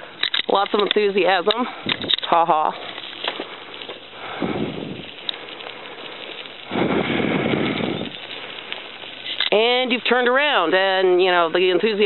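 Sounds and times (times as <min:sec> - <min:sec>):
bicycle tyres crunching on gravel: 0:00.0 - 0:12.0.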